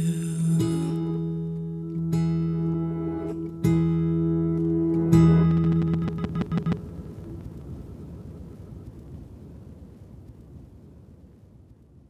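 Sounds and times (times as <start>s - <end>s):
acoustic folk song: 0.0s - 7.1s
low rumbling noise: 0.0s - 12.0s
stuttering clicks: 5.4s - 7.6s.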